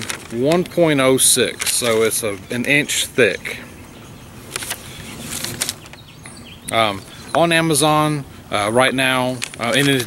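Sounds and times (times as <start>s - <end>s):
paper rustling: 0.0s - 3.0s, 4.5s - 6.0s, 9.3s - 10.0s.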